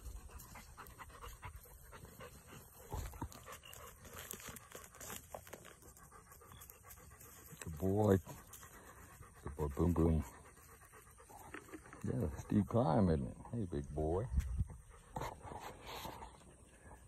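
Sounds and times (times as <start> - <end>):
dog panting: 0.0 - 17.0.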